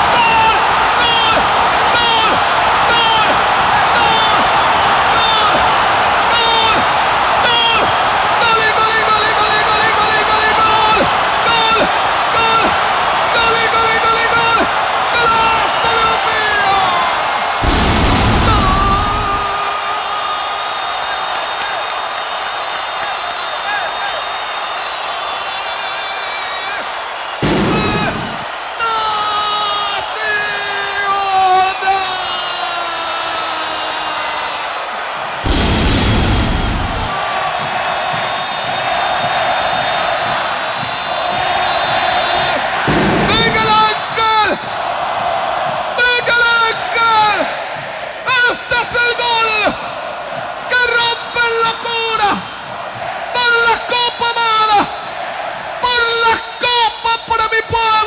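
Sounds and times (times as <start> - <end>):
stadium crowd noise: 0.0 - 58.0
deep boom: 17.6 - 19.6, 27.4 - 28.5, 35.4 - 37.8, 42.9 - 44.1.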